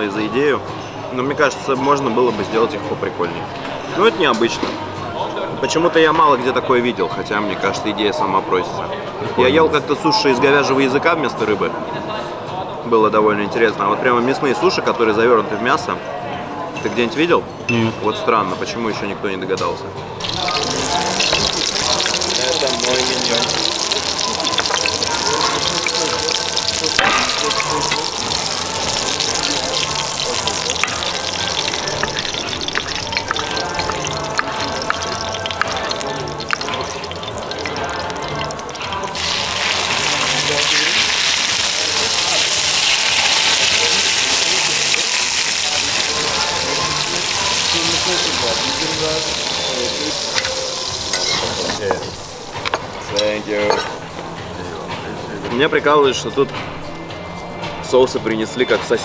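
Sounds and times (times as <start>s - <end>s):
background music: 0.0s - 59.0s.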